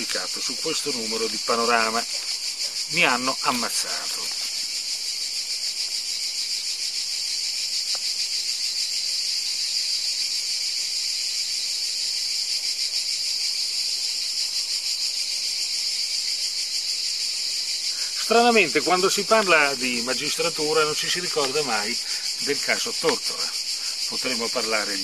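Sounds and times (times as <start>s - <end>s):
insect chorus buzzing: 0.0s - 25.0s.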